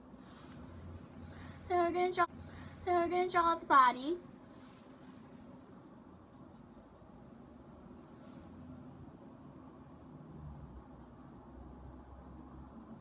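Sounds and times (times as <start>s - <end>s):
low room hum: 0.0s - 13.0s
pencil scratching on paper: 6.0s - 7.4s, 9.0s - 11.3s.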